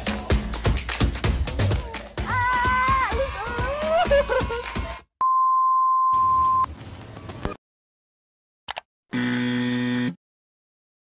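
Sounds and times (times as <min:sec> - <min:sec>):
quick clicks: 0:08.7 - 0:08.9.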